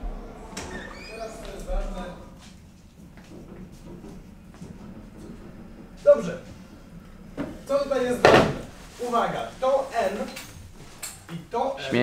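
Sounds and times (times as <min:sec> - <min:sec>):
voices: 0:00.0 - 0:02.7, 0:03.8 - 0:12.0
chair scraping on floor: 0:00.0 - 0:11.3.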